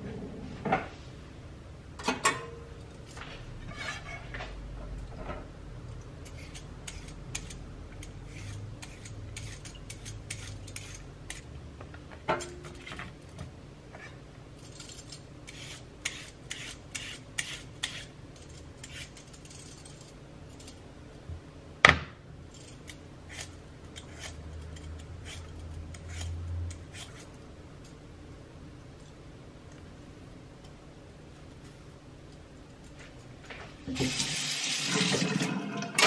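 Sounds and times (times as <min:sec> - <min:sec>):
vegetable peeler scraping: 0:06.2 - 0:11.5, 0:14.6 - 0:20.8, 0:22.5 - 0:27.4.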